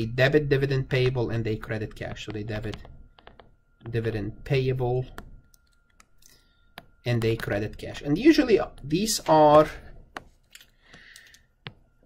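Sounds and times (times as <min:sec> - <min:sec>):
faint high whine: 0:00.0 - 0:12.0
stylus tapping on tablet screen: 0:02.0 - 0:04.2, 0:05.0 - 0:07.8, 0:08.7 - 0:12.0.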